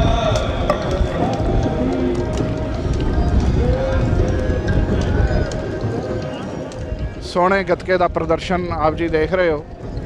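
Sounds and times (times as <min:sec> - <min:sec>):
crowd voices: 0:00.0 - 0:08.2
kettle drums beating: 0:00.0 - 0:08.5
low rumble: 0:00.0 - 0:09.2.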